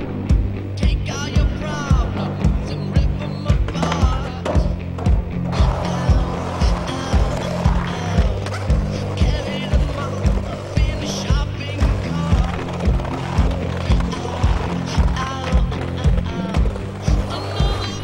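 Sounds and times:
soundtrack music with kick beat: 0.0 - 18.0.

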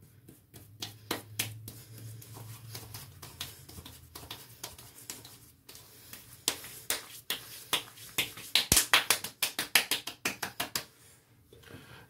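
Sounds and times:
palms slapping skin: 0.2 - 10.9.

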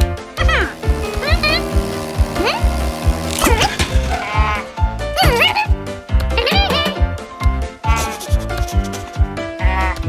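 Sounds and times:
cartoon music with steady beat: 0.0 - 10.0.

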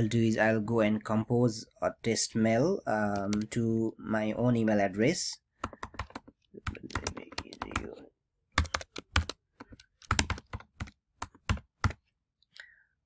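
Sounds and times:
computer keyboard typing: 3.1 - 3.6, 5.6 - 12.1.

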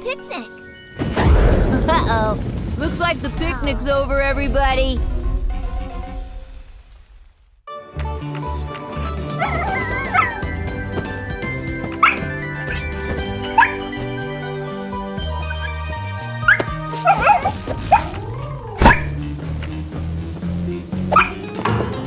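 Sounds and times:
cartoon background music: 0.0 - 1.1, 7.7 - 22.0
puppy barking: 9.4 - 10.5, 12.0 - 13.8, 16.4 - 18.2, 21.1 - 21.4.

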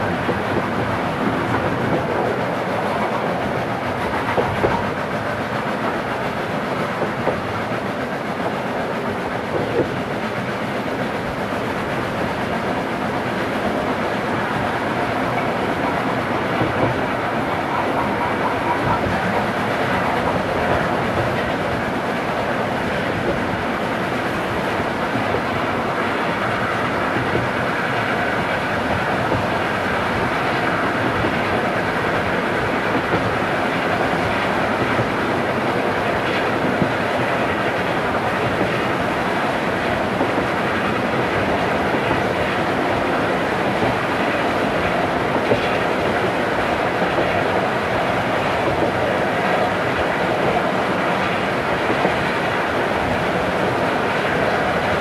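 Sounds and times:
steam train running: 0.0 - 55.0
wheels clacking over rail joints: 0.0 - 55.0.

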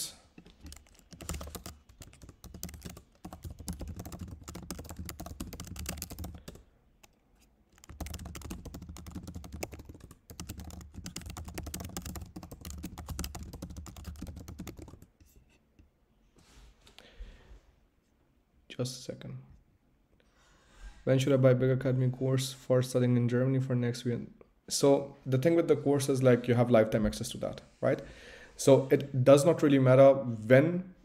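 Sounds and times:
fast typing on keyboard: 0.4 - 15.1.

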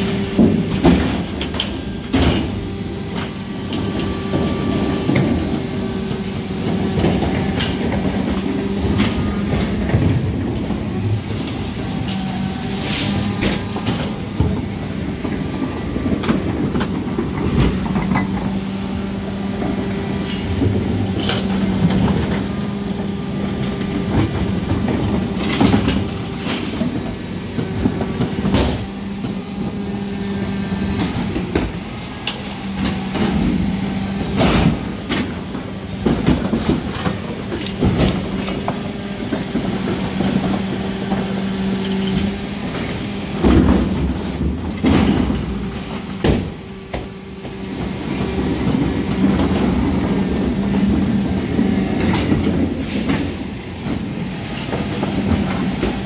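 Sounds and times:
bins clanking and knocking: 0.0 - 56.0
refuse lorry engine humming: 0.0 - 56.0.

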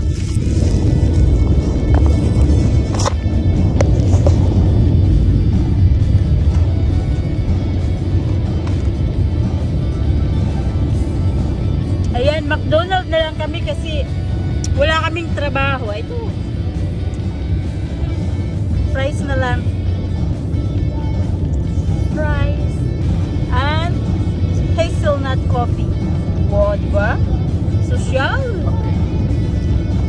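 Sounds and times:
car cabin road rumble: 0.0 - 30.0
music playing: 0.0 - 30.0.

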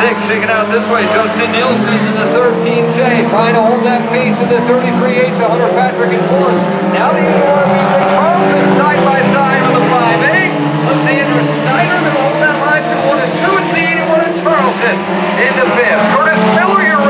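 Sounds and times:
person talking: 0.0 - 17.0
race car engines droning: 0.0 - 17.0.

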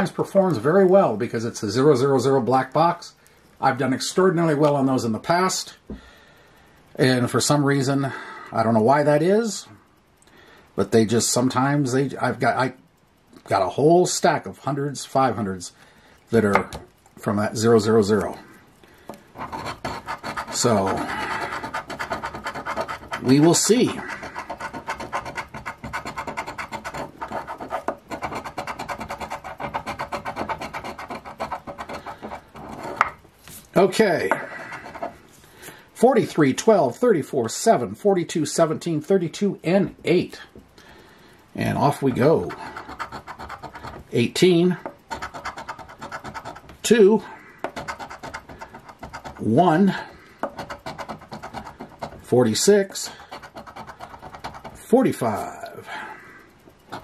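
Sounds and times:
coin scratching ticket: 19.4 - 33.2, 33.8 - 35.2, 42.0 - 47.0, 47.6 - 55.5.

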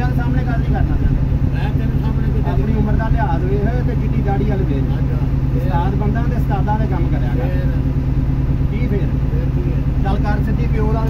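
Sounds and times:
bus engine droning: 0.0 - 11.0.

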